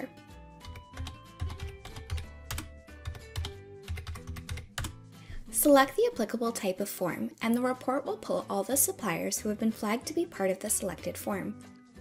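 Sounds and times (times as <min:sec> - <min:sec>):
background music: 0:00.0 - 0:12.0
computer keyboard typing: 0:00.6 - 0:05.0.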